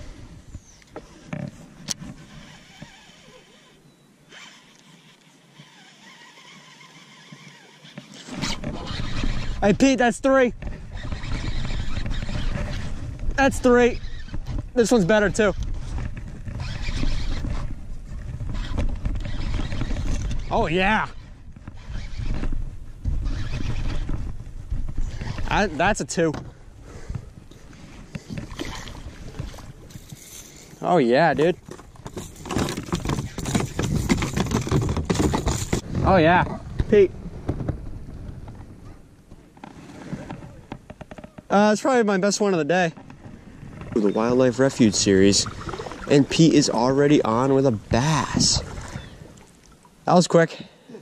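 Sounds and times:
wind buffeting microphone: 0:08.4 - 0:39.1, 0:42.9 - 0:49.4
water splashing: 0:27.5 - 0:36.0, 0:43.1 - 0:50.2
knocking and rattling: 0:31.6 - 0:35.8.

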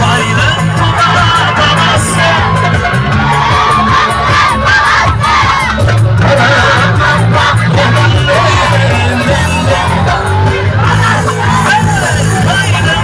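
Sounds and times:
crowd voices: 0:00.0 - 0:13.0
live band playing: 0:00.0 - 0:13.0
man singing into microphone: 0:00.0 - 0:13.0.

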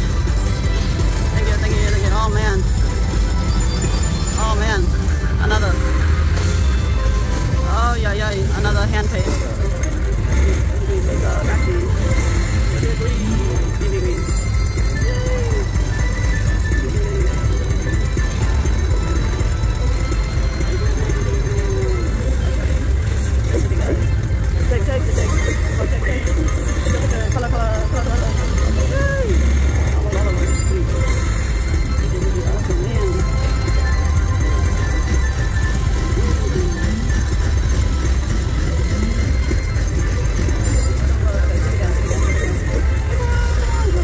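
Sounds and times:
indistinct voices: 0:00.0 - 0:44.0
low casino rumble: 0:00.0 - 0:44.0
slot machine music: 0:00.0 - 0:44.0
slot machine win sounds: 0:00.0 - 0:44.0.

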